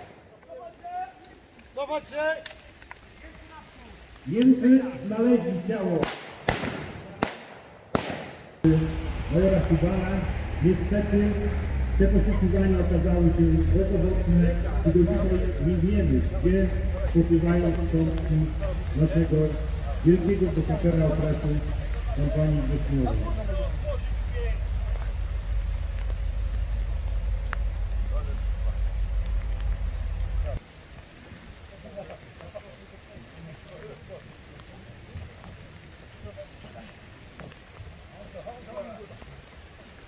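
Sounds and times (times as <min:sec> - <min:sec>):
rifle shots echoing: 0:05.9 - 0:08.7.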